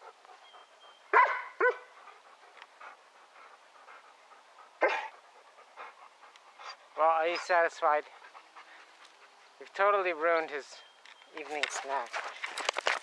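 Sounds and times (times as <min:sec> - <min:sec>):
dog barking: 0:01.1 - 0:01.9, 0:04.8 - 0:05.1.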